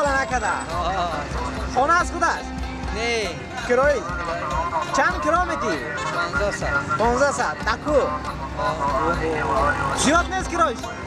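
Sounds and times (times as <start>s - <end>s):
man talking: 0.0s - 10.9s
street traffic: 0.0s - 11.0s.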